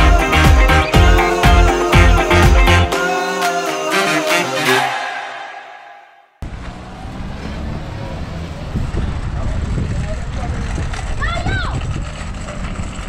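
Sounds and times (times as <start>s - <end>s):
car driving past: 6.4s - 10.2s
low rumble of traffic: 6.4s - 13.0s
wind on microphone: 8.6s - 13.0s.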